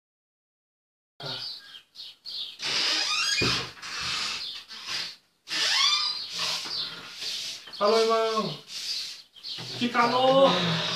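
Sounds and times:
person squealing: 10.1 - 10.9.

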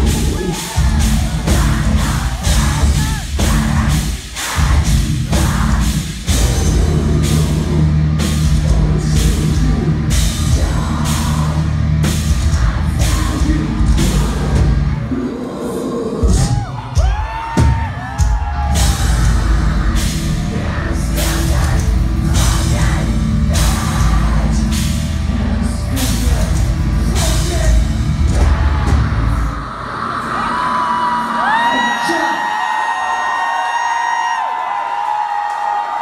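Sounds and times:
crowd cheering and screaming: 0.0 - 6.0, 14.2 - 24.8, 28.3 - 36.0
live metal band playing: 0.0 - 30.0.

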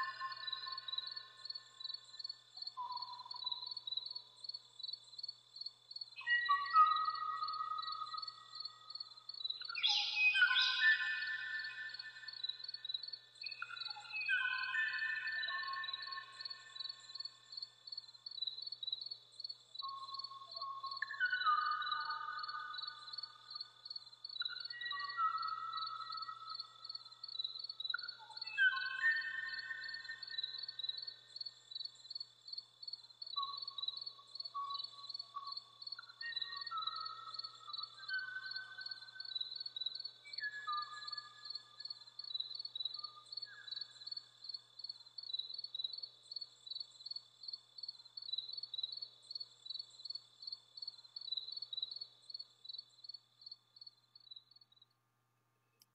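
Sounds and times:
bird singing whistled notes: 0.0 - 3.8, 6.2 - 8.9, 9.5 - 12.8, 13.4 - 17.3, 19.8 - 23.4, 24.4 - 31.2, 33.4 - 44.3
insect trill: 0.0 - 54.9.

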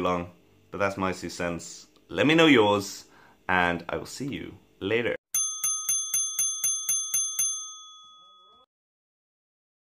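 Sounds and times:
small bell struck rapidly: 5.3 - 8.7.

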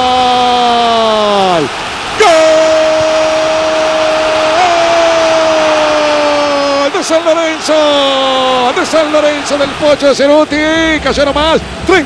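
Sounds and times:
commentator's long goal cry: 2.2 - 8.8.

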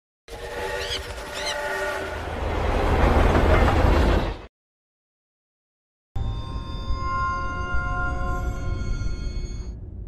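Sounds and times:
train rumbling: 0.3 - 4.5.

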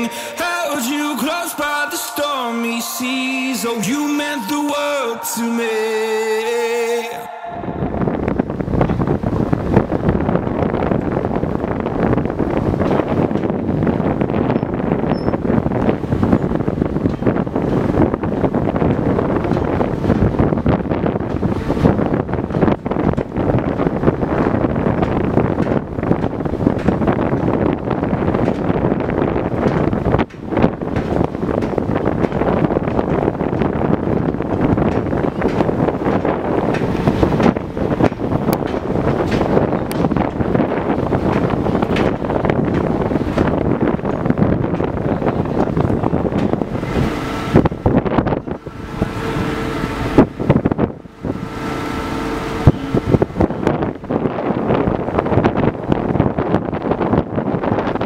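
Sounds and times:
wind rushing over microphone: 0.0 - 58.0
low rumble of ship: 5.2 - 58.0.

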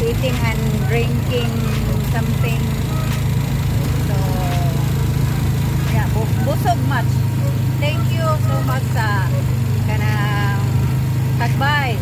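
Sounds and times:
woman talking: 0.0 - 3.1, 3.9 - 5.0, 5.8 - 12.0
motorcycle engine droning: 0.0 - 12.0.

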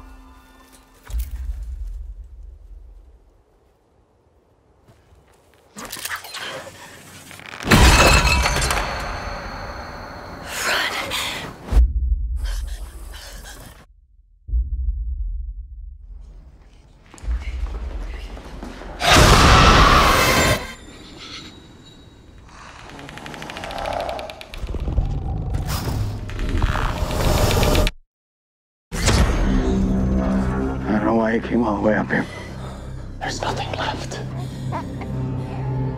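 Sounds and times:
glass shattering and clattering: 7.7 - 9.6.

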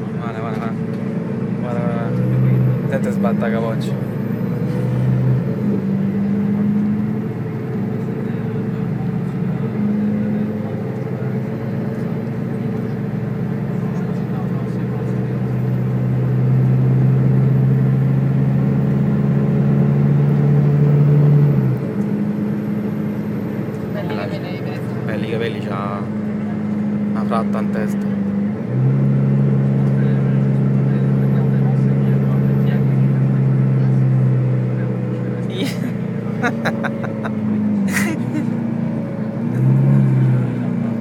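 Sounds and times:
bus engine drone: 0.0 - 41.0.

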